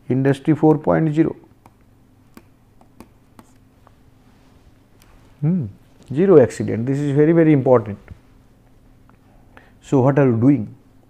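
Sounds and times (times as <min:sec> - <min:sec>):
low electrical hum: 0:00.0 - 0:11.0
stylus tapping and scratching: 0:01.5 - 0:04.1.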